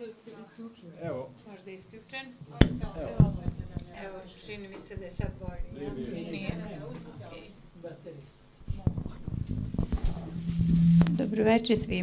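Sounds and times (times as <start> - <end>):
microphone handling knocks: 8.6 - 10.3
hiss and low hum: 9.4 - 12.0.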